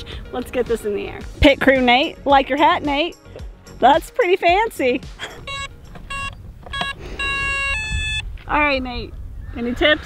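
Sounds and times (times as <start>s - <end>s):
electronic startup beeps: 5.4s - 8.2s.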